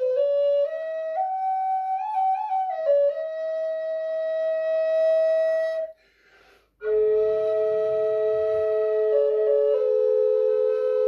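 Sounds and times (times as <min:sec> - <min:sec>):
wooden double flute: 0:00.0 - 0:11.0.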